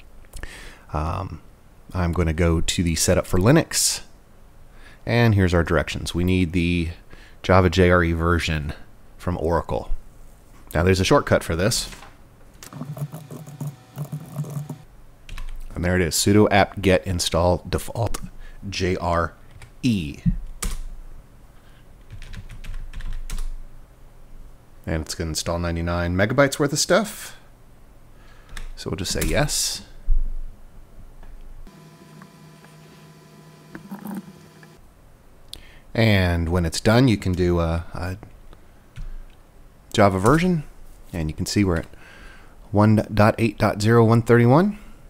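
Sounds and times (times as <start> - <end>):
electrical hum: 10.8 - 15.8, 31.6 - 35.0
fast typing on keyboard: 12.6 - 15.6, 22.1 - 23.5.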